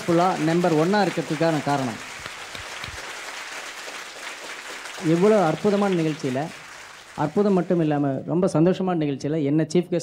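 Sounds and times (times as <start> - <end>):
audience applauding: 0.0 - 8.1.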